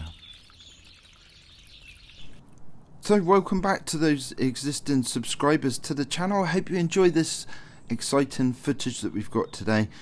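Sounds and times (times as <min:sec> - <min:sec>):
faint birdsong: 0:00.0 - 0:02.6, 0:03.9 - 0:10.0.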